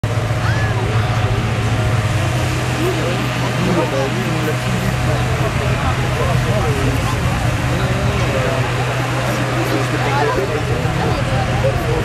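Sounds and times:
crowd chatter: 0:00.0 - 0:12.0
inflator fans humming: 0:00.0 - 0:12.0.

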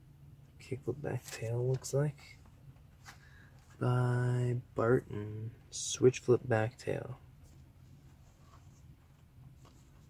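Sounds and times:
low hum inside a car: 0:00.0 - 0:10.0.

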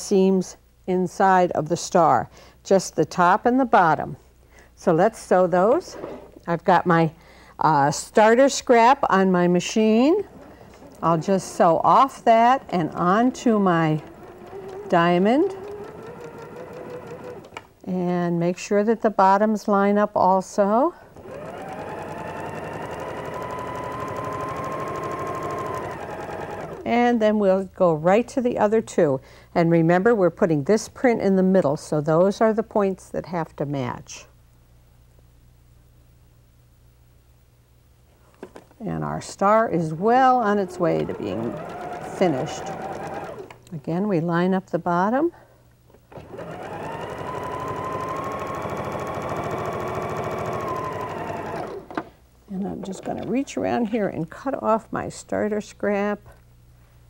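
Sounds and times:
sewing machine stitching: 0:09.9 - 0:17.6, 0:21.2 - 0:26.9, 0:39.5 - 0:43.6, 0:46.1 - 0:52.0.

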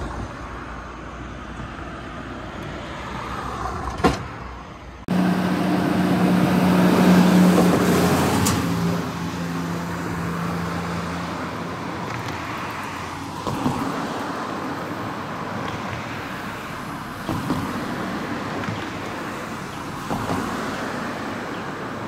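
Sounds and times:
road traffic passing: 0:00.0 - 0:22.0
low engine hum: 0:05.1 - 0:12.1.

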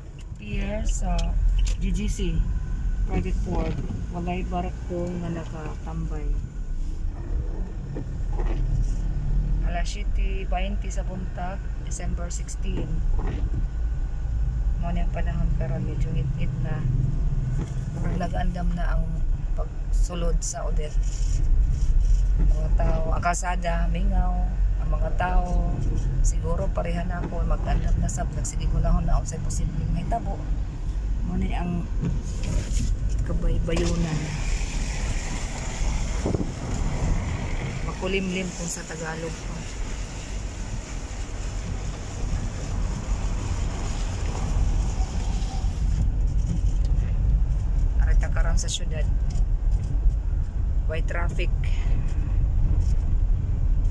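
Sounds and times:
car rumble on wet road: 0:00.0 - 0:53.9
wind buffeting microphone: 0:24.5 - 0:53.9.

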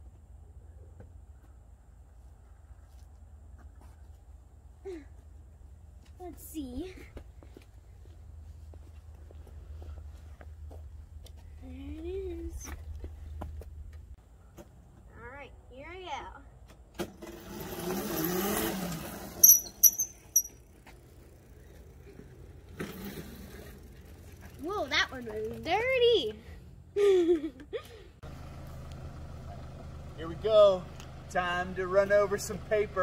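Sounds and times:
electric scooter riding past: 0:17.0 - 0:26.6, 0:28.2 - 0:33.0
short high-pitched squeals: 0:19.3 - 0:20.6.

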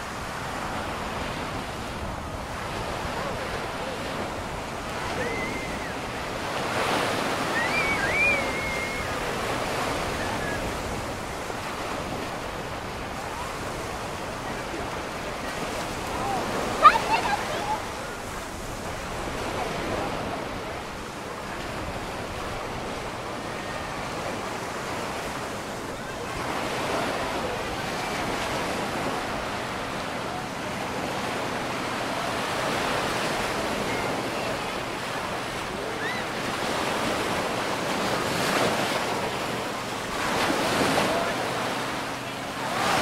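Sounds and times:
waves breaking on beach: 0:00.0 - 0:43.0.

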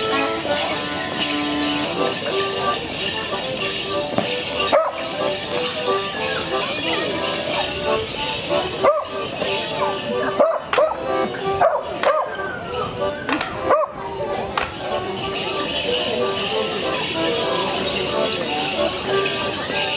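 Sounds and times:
accordion dance tune: 0:00.0 - 0:19.9
leg bells jingling: 0:00.0 - 0:19.9
dog barking: 0:04.7 - 0:05.0, 0:08.8 - 0:09.2, 0:10.3 - 0:11.0, 0:11.6 - 0:12.4, 0:13.7 - 0:14.0.

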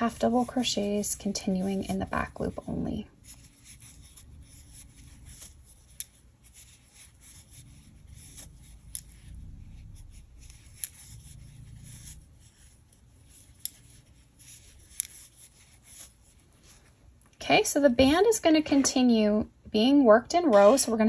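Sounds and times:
yarn rustling against crochet hook: 0:00.0 - 0:21.0.

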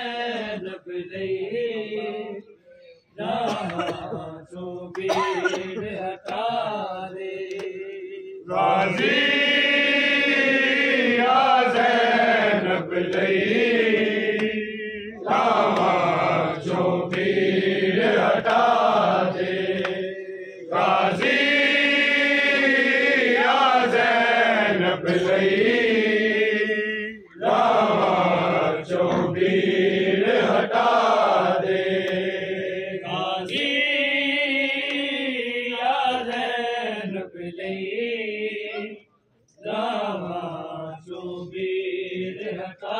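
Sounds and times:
men chanting a lament: 0:00.0 - 0:42.9.

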